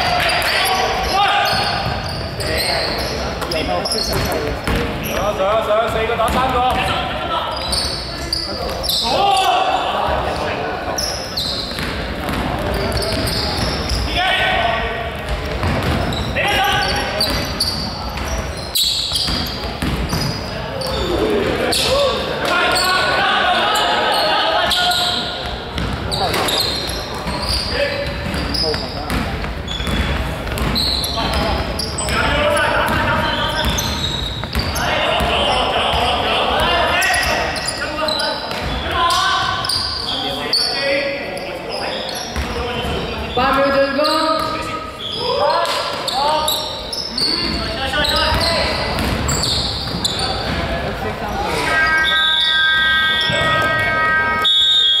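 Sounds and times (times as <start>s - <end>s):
players calling: 0.0s - 55.0s
basketball bouncing on hardwood: 15.2s - 16.1s, 19.3s - 20.3s, 29.1s - 31.4s
electronic buzzer: 51.6s - 55.0s.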